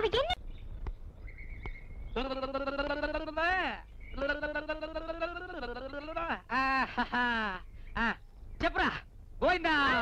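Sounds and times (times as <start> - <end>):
person calling out in long cries: 2.2 - 3.5, 4.2 - 6.7.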